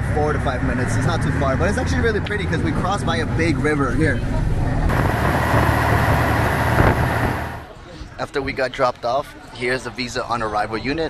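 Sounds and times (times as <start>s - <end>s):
bus engine and road rumble: 0.0s - 8.2s
hiss of wind and road noise: 4.9s - 7.8s.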